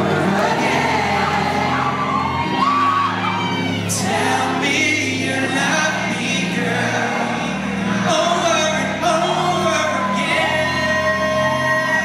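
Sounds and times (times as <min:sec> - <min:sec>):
man singing into a microphone: 0:03.8 - 0:12.0.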